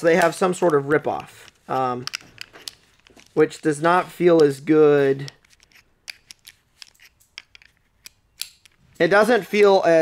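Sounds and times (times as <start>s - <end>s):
metal belt buckle clicking: 5.2s - 8.8s.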